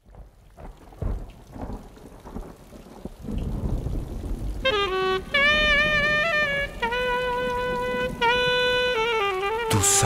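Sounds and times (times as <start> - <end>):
thunder rumbling: 0.0 - 8.4
rain falling: 0.0 - 10.0
wind instrument melody: 4.6 - 10.0.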